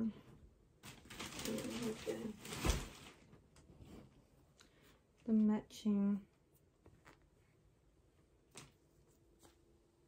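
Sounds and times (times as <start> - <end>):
clothing rustling and clicking: 0.8 - 4.2.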